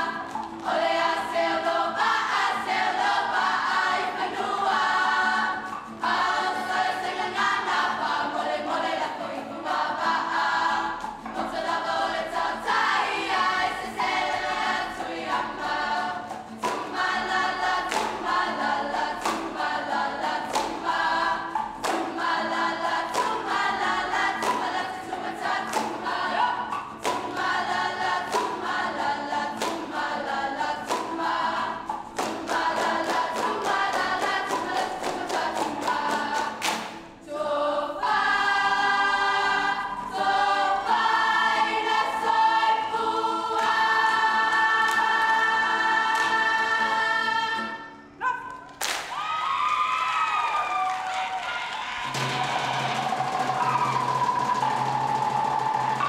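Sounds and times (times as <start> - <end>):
hand claps: 0.0 - 4.1, 14.0 - 37.2, 43.6 - 45.4, 46.1 - 46.6, 48.5 - 56.0
guitar accompaniment: 0.0 - 37.2, 38.0 - 48.8, 52.0 - 56.0
choir singing: 0.0 - 48.3, 51.6 - 56.0.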